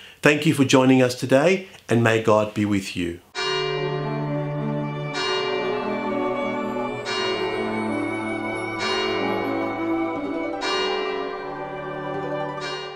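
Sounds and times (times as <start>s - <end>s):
church bells ringing: 3.4s - 12.9s.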